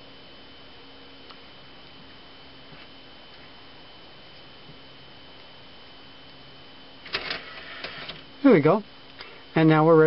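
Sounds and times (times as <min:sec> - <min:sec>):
faint steady electronic tone: 0:00.0 - 0:10.0
disc tray clicks and clatter: 0:07.0 - 0:08.3.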